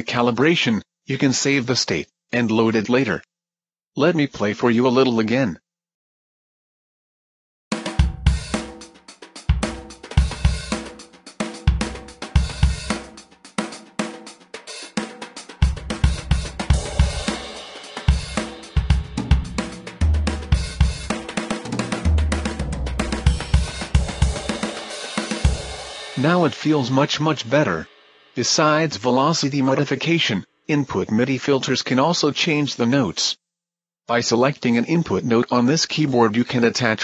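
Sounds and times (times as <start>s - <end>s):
drum kit groove with fills: 7.7s - 27.1s.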